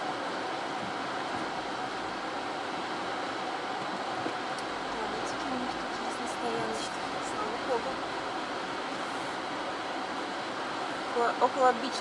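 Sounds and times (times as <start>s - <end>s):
car engine and tyres humming: 0.0s - 12.0s.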